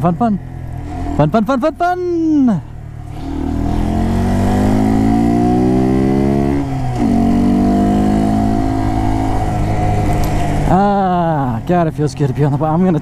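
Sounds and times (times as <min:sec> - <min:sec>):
motorcycle engine accelerating: 0:02.3 - 0:11.6
wind rush: 0:03.1 - 0:07.0.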